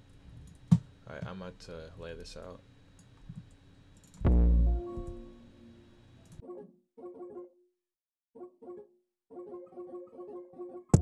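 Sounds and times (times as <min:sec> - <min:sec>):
loud low note: 0:04.2 - 0:05.6
plucked synth melody: 0:04.2 - 0:05.8.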